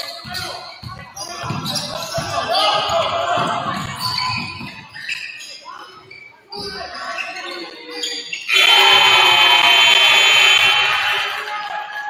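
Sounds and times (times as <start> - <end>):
scoreboard buzzer: 8.5 - 11.4.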